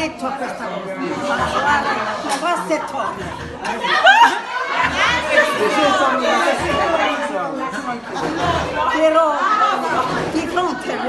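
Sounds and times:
overlapping conversational chatter: 0:00.0 - 0:11.0.

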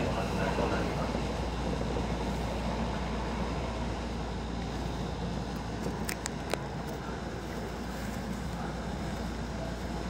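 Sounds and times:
electric train rumbling: 0:00.0 - 0:10.0.

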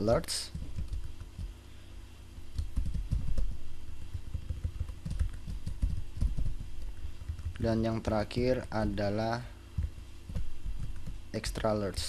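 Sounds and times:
computer keyboard typing: 0:00.5 - 0:01.5, 0:02.5 - 0:07.9, 0:09.8 - 0:11.8.

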